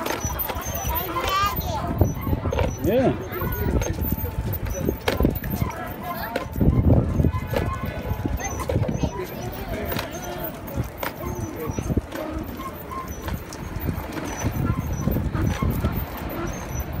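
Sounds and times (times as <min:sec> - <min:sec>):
footsteps: 0:00.0 - 0:17.0
tricycle rolling on concrete: 0:00.0 - 0:17.0
voices: 0:00.0 - 0:17.0.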